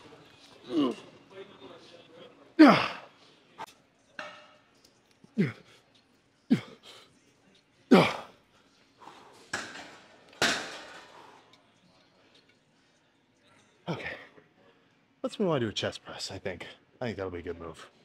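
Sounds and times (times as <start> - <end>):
man grunting with effort: 2.6 - 3.0.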